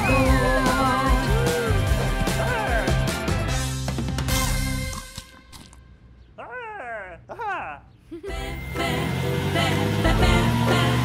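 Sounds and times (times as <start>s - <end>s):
music: 0.0s - 5.9s, 8.3s - 11.0s.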